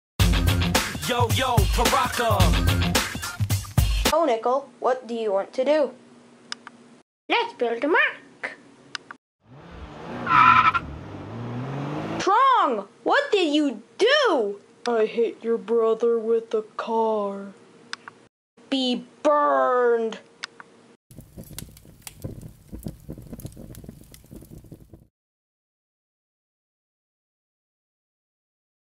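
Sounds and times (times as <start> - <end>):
car engine rising in pitch: 9.4 - 12.2
tyre screech: 10.1 - 10.9
flames crackling: 21.1 - 25.1.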